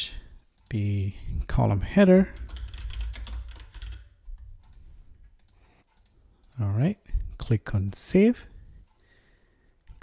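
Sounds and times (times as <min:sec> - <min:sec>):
keyboard and mouse clicks: 0:02.4 - 0:06.6.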